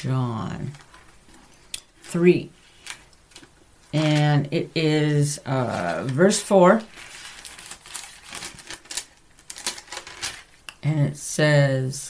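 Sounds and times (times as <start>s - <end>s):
pages being flipped: 5.7s - 10.6s.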